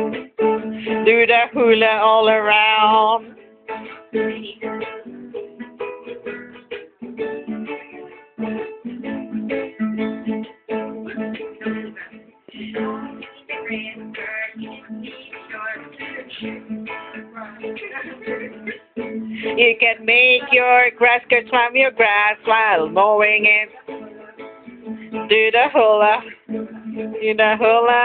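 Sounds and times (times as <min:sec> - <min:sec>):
ukulele and guitar strumming: 0:00.0 - 0:28.0.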